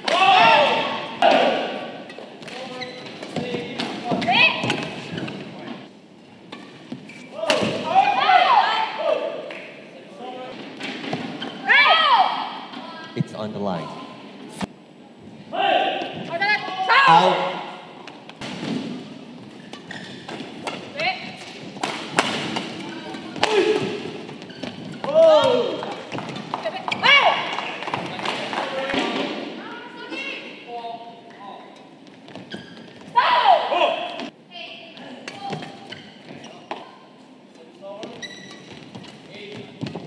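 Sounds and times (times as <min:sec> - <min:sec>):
voices in a hall: 0:00.0 - 0:40.0
shoes squeaking on court: 0:02.0 - 0:07.4, 0:18.1 - 0:28.2, 0:31.9 - 0:33.2, 0:35.0 - 0:37.0, 0:37.9 - 0:40.0
racket hitting shuttlecock: 0:19.7 - 0:24.8.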